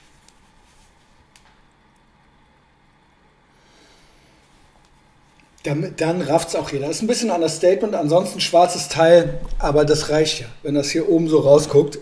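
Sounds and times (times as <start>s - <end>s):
shirt fabric rustling: 0.0s - 1.6s.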